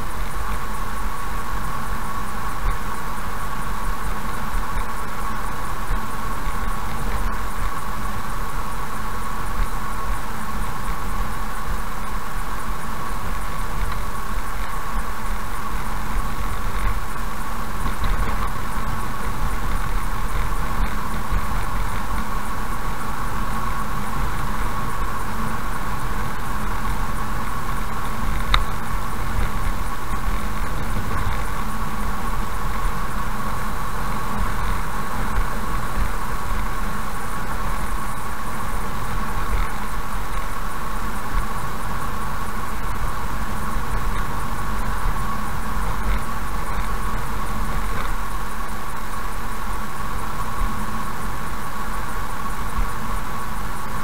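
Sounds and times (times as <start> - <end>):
car road and engine noise: 0.0 - 54.0.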